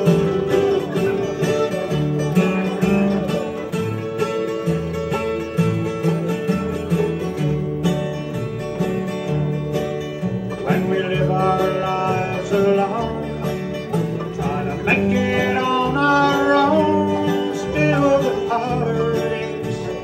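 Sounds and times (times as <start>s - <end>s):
acoustic guitars: 0.0s - 20.0s
banjo: 0.0s - 20.0s
mandolin: 0.0s - 20.0s
plucked upright bass: 0.0s - 20.0s.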